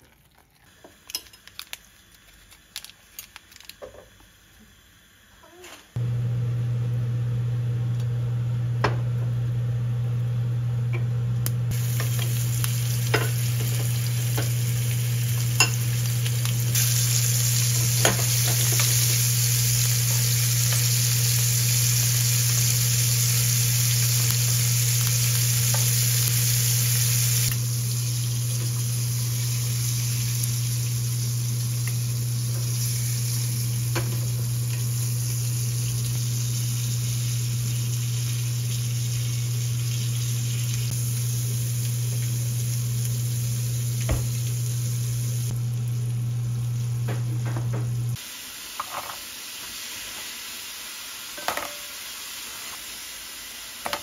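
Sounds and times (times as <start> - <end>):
food sizzling in a pan: 11.6 - 54.0.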